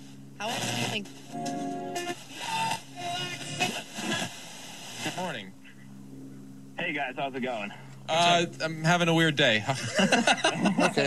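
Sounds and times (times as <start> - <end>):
radio tuning through stations: 0.0 - 5.9, 6.8 - 9.3.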